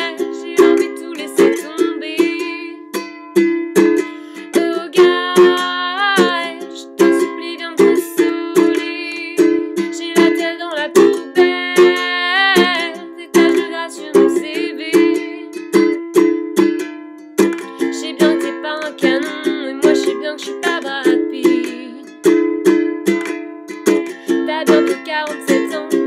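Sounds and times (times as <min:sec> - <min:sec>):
woman singing: 0:00.0 - 0:03.0, 0:04.1 - 0:15.9, 0:17.6 - 0:22.3, 0:24.0 - 0:26.0
ukulele strumming: 0:00.0 - 0:26.0.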